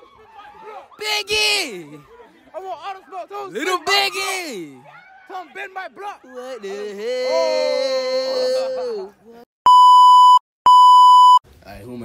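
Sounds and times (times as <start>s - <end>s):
electronic beeps: 9.7s - 11.4s.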